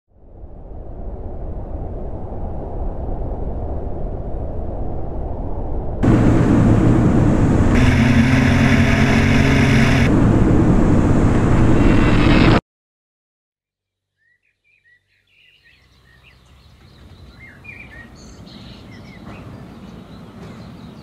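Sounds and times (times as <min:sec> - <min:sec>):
low rumble: 0:00.2 - 0:12.6
propeller aircraft engine: 0:06.0 - 0:12.6.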